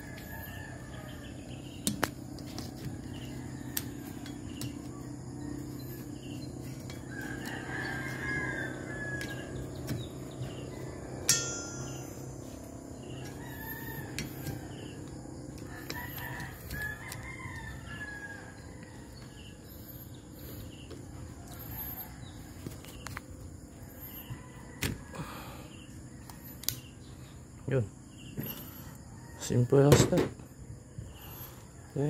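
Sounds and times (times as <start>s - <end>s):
rooster crowing: 0.0s - 1.8s, 2.6s - 19.8s, 21.0s - 22.8s, 23.6s - 26.6s, 28.2s - 29.9s
low steady hum: 0.0s - 29.6s.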